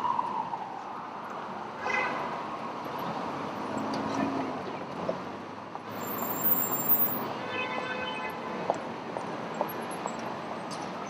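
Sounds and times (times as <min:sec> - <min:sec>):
hum of passing vehicles: 0:02.3 - 0:07.4
thin high squeal: 0:06.0 - 0:07.2.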